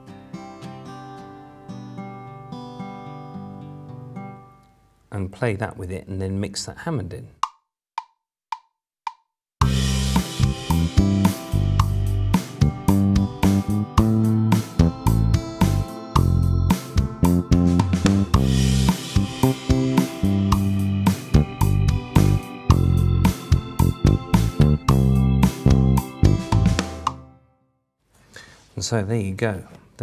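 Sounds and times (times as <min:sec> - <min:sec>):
acoustic guitar chords: 0:00.0 - 0:04.8, 0:09.6 - 0:27.4
programmed drum beat: 0:09.6 - 0:27.2
bass line: 0:09.6 - 0:27.4
sustained organ: 0:09.6 - 0:27.4.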